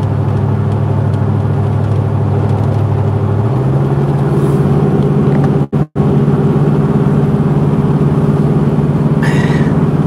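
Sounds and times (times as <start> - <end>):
vehicle engine and road drone: 0.0 - 10.0.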